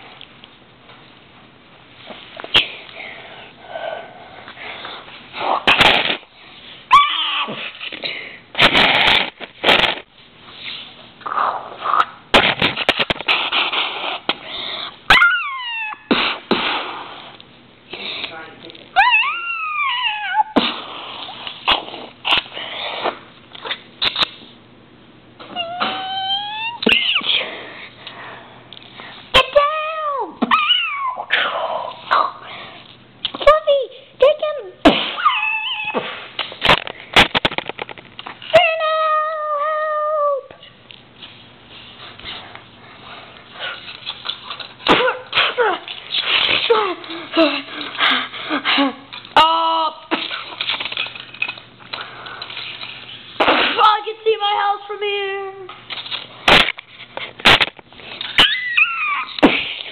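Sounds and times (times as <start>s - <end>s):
person making hissing mouth sounds: 13.2s - 14.4s
person making meow-like cries: 25.5s - 26.9s
plastic pieces clicking on floor: 50.1s - 51.6s.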